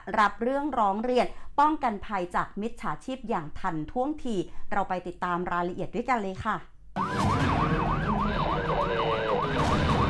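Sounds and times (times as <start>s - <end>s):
police siren yelping: 7.0s - 10.0s.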